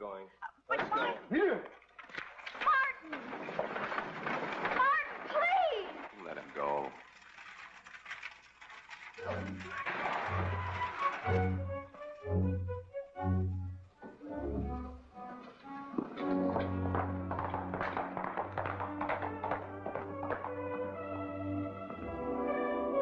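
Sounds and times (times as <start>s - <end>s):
orchestral score: 9.3s - 23.0s.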